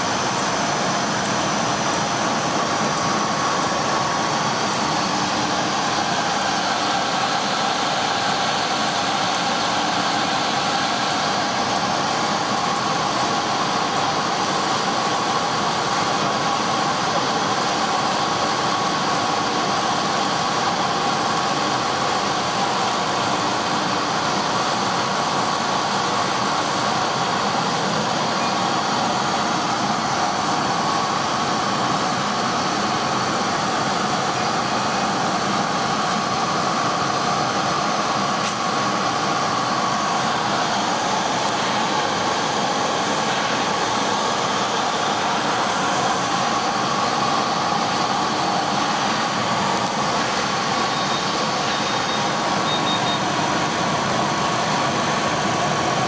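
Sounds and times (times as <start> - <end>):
laser cutting machine humming: 0.0 - 56.0.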